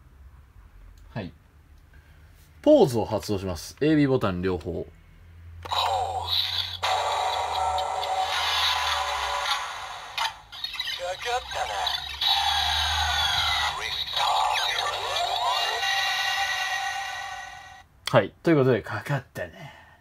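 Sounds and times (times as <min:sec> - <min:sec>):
toy electronic sound effects: 0:05.6 - 0:17.8
toy music with recorded voice: 0:05.7 - 0:17.6.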